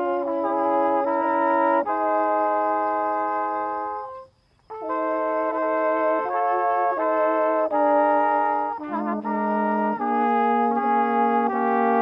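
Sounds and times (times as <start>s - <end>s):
flugelhorn long note: 0.0s - 12.0s.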